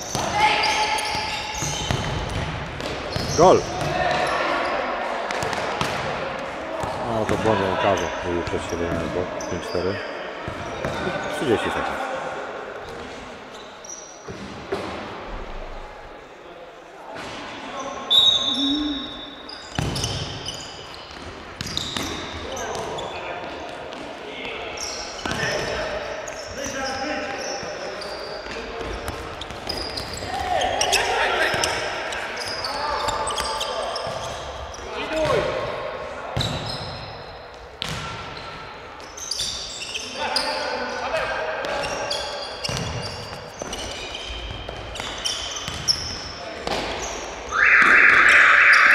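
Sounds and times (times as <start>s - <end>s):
shoes squeaking: 0.0s - 2.4s, 18.1s - 23.3s, 24.0s - 34.9s, 38.4s - 41.1s, 41.7s - 47.4s
electronic scoreboard buzzer: 47.5s - 48.9s.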